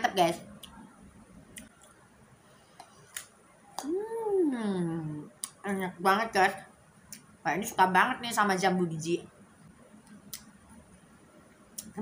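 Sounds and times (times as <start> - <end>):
person humming hmm: 3.8 - 5.2.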